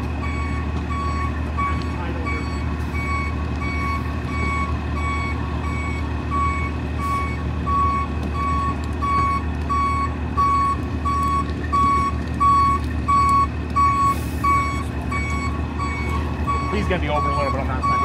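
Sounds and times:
diesel engine running low: 0.0 - 18.0
backup alarm beeping: 0.2 - 18.0.

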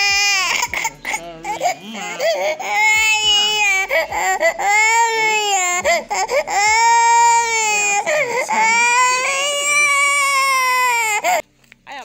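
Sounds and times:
girl crying in high wails: 0.0 - 11.4.

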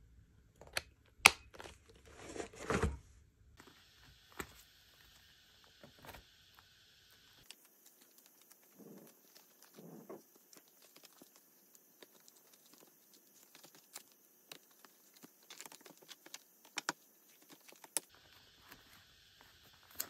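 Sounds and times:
binder cover and paper rustling: 1.6 - 3.0, 7.4 - 20.0
page rustles: 7.4 - 20.0.

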